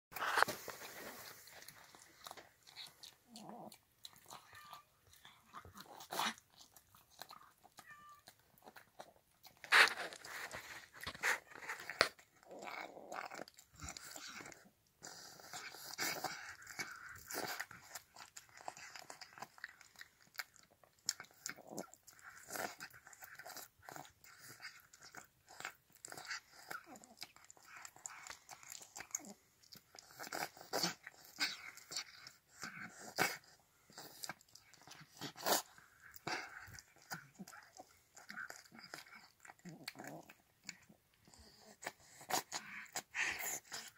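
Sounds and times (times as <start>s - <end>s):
cat eating wet food: 0.2s - 43.9s.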